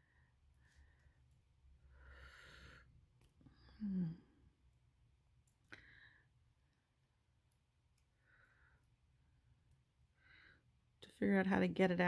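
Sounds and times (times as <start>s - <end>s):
breathy exhale: 1.9s - 2.9s
person humming low: 3.7s - 4.4s.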